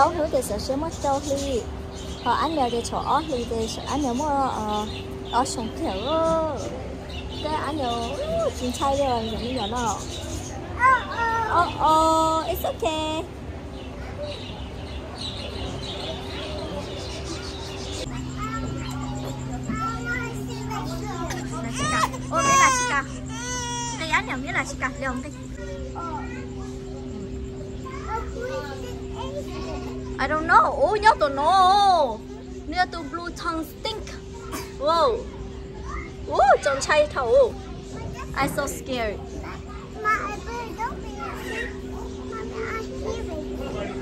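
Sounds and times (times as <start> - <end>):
background chatter: 0.0 - 44.0
steady low hum: 0.0 - 44.0
child making high calls: 18.1 - 27.0.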